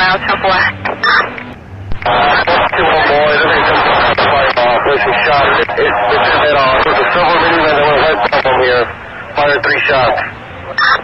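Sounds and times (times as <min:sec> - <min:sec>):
person talking over police radio: 0:00.0 - 0:01.3, 0:02.0 - 0:11.0.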